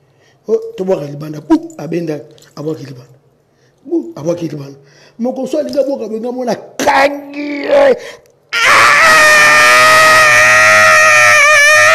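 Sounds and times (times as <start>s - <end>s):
person screaming: 7.4s - 11.9s.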